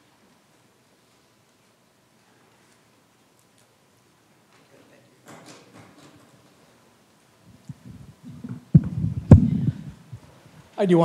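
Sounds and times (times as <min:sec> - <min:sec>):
microphone handling thumps and rubbing: 0:07.5 - 0:10.7
sharp knock on microphone: 0:08.4 - 0:09.7.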